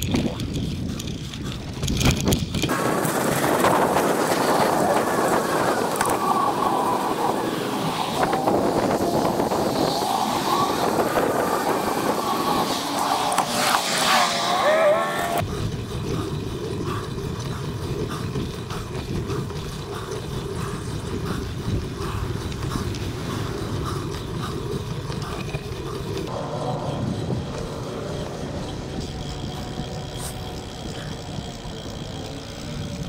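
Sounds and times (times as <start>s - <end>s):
wind buffeting microphone: 0.0s - 14.2s, 15.4s - 33.0s
bicycle tyres on pavement: 0.0s - 33.0s.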